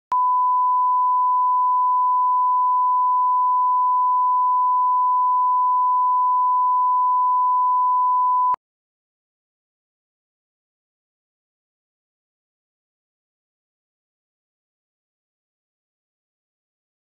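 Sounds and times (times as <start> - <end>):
steady test tone beep: 0.1 - 8.6.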